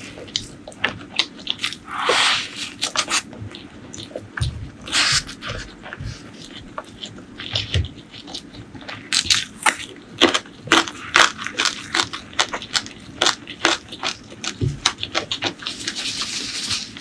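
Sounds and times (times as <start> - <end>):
person chewing crunchy food: 0.0 - 17.0.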